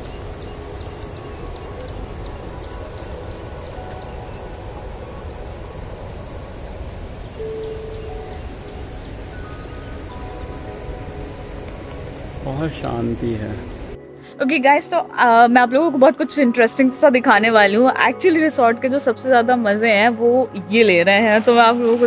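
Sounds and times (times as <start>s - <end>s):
faint soft music: 0.0s - 22.0s.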